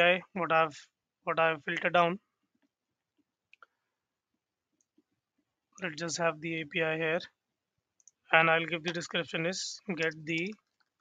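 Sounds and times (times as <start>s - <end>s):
computer mouse clicks: 8.0s - 8.2s, 10.0s - 11.0s.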